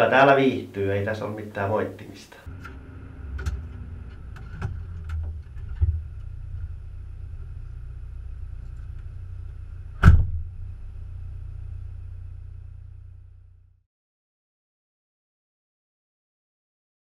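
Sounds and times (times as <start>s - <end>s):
loud thump: 9.9s - 10.7s.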